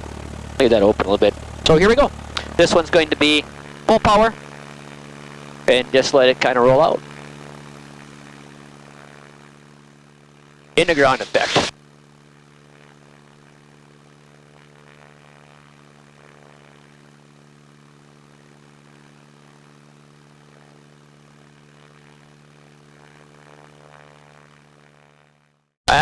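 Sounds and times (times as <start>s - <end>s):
faint propeller plane drone: 0.0s - 26.0s.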